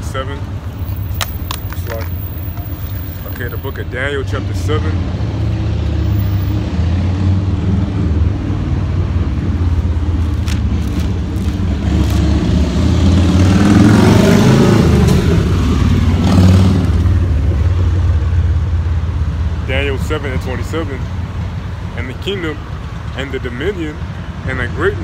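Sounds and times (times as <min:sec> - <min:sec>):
street traffic rumble: 0:00.0 - 0:25.0
motor vehicle passing: 0:05.1 - 0:17.3.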